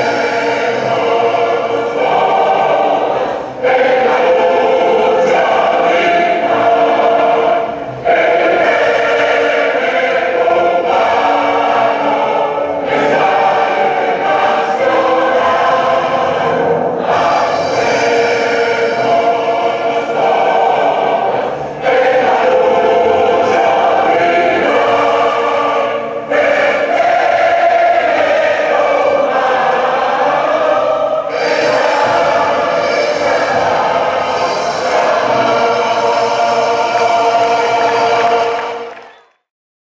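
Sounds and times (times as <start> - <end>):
crowd singing in chorus: 0.0 - 39.3
music: 0.0 - 39.5.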